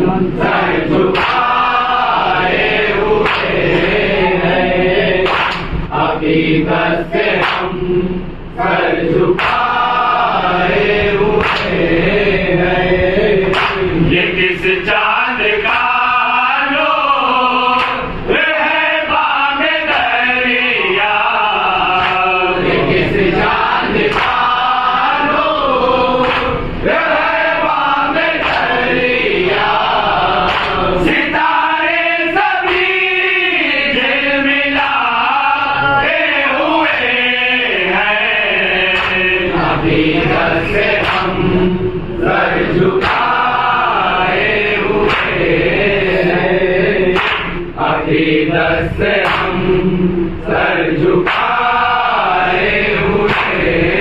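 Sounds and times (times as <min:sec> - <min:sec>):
lead voice on a microphone: 0:00.0 - 0:54.0
men singing in unison: 0:00.0 - 0:54.0.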